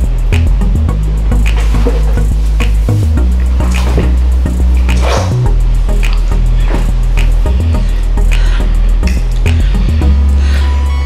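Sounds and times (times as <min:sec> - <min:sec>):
background music with beats: 0:00.0 - 0:11.0.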